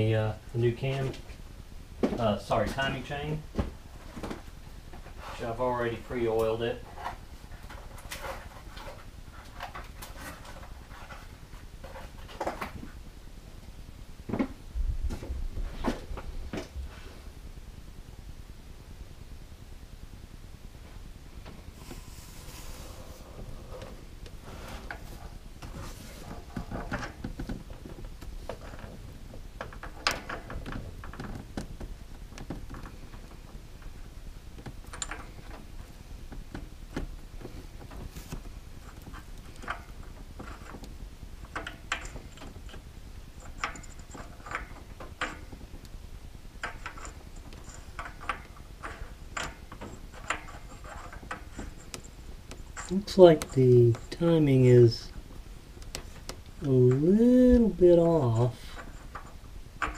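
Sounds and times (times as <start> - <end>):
metal chain clinking: 34.8 - 35.6, 38.8 - 45.7, 46.6 - 55.2, 57.8 - 59.9.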